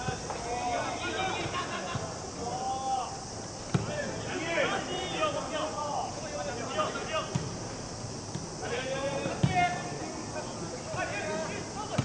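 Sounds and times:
footballers shouting: 0.0 - 7.7, 8.5 - 12.0.

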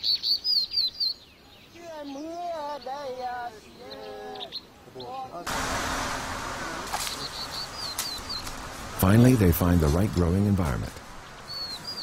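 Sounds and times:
small songbird chirping: 0.0 - 5.4, 7.0 - 8.7, 11.0 - 12.0.

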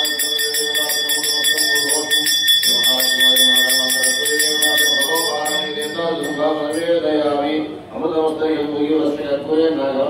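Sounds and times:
hand bell ringing rapidly: 0.0 - 7.2
person chanting: 0.0 - 10.0.

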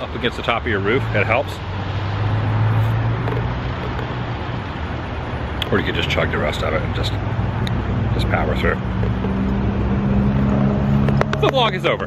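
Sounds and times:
outdoor background rush: 0.0 - 12.0.

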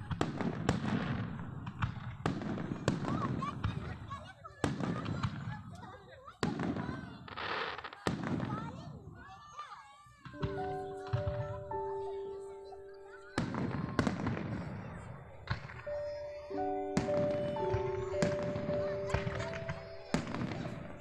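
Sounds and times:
fireworks bangs: 0.0 - 9.2, 10.2 - 21.0.

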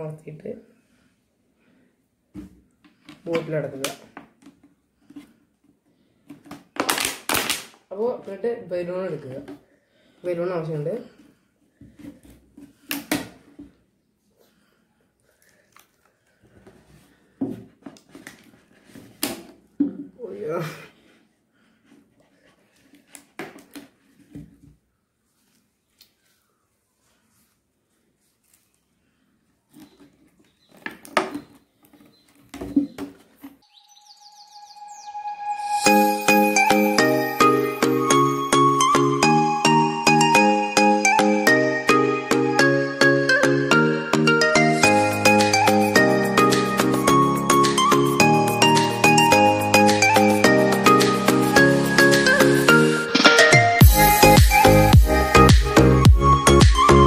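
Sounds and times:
plastic bottle crackling: 6.3 - 8.4, 29.7 - 33.7
bird-like chirps: 31.4 - 36.4.

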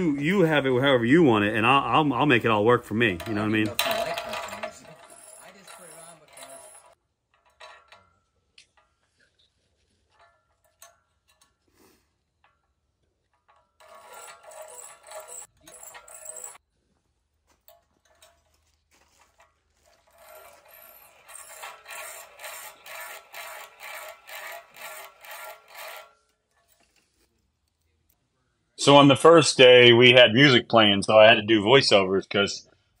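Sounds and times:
hand-cranked filer grinding: 0.6 - 8.1, 13.3 - 16.6, 17.7 - 27.4.

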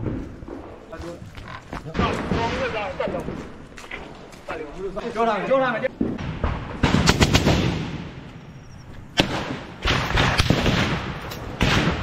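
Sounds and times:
gunshots with echo: 9.2 - 12.0.

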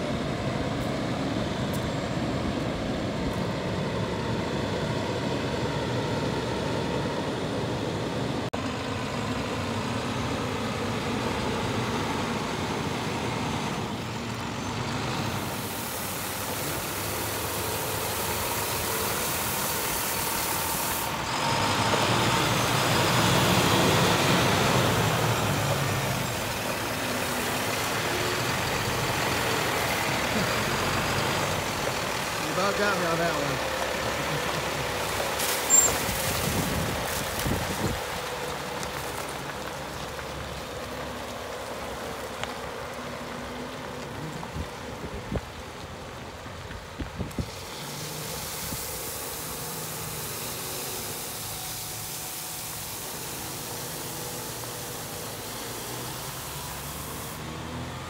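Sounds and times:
diesel truck engine running: 0.0 - 58.0
water spraying onto gravel: 15.3 - 57.5.

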